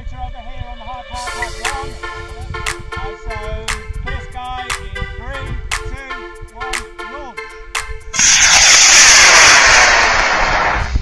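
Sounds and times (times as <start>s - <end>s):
rocket motor rushing hiss: 8.2s - 11.0s.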